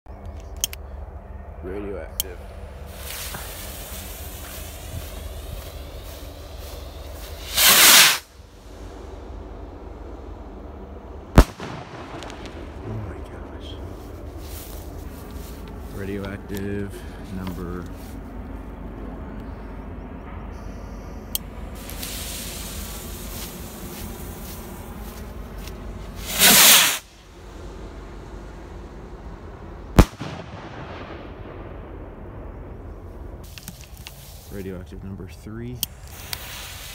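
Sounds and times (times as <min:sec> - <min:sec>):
firework rocket whoosh: 0:02.8 - 0:09.8, 0:11.3 - 0:13.6, 0:21.8 - 0:25.2, 0:26.1 - 0:27.1, 0:36.0 - 0:36.9
rolling echo: 0:08.9 - 0:14.0, 0:29.6 - 0:33.4
firework bang with echo: 0:11.4 - 0:12.8, 0:26.3 - 0:27.0, 0:30.0 - 0:31.7.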